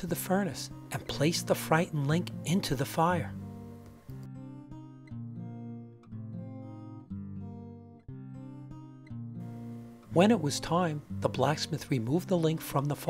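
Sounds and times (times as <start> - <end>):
acoustic guitar slow chords: 0.0 - 13.0.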